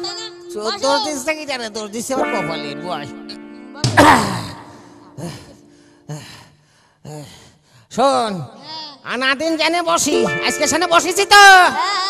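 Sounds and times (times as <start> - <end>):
man gasping: 4.0 - 7.9.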